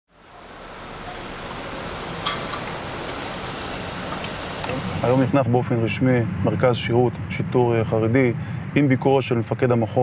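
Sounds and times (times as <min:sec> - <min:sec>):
traffic hiss: 0:00.1 - 0:09.4.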